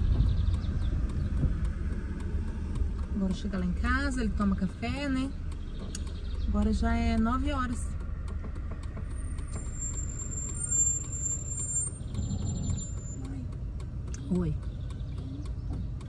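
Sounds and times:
car engine rumble: 0.0 - 16.0.

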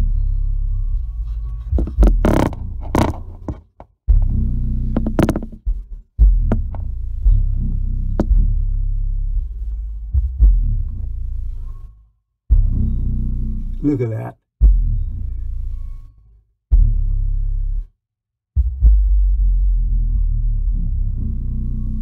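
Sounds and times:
deep bass throbbing: 0.0 - 16.0, 16.7 - 17.9, 18.6 - 22.0
sharp clicks and knocks: 1.7 - 3.9, 5.0 - 5.7, 6.5 - 6.9.

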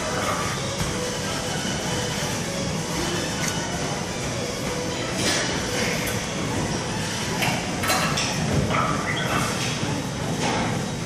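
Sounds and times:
large hall room noise: 0.0 - 11.0.

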